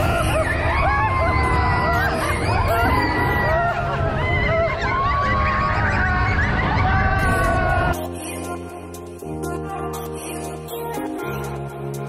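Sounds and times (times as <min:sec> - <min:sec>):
roller coaster riders yelling: 0:00.0 - 0:08.0
roller coaster rumble: 0:00.0 - 0:08.0.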